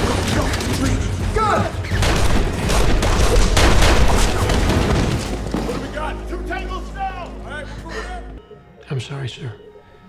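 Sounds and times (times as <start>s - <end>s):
rapid gunfire: 2.0s - 5.2s.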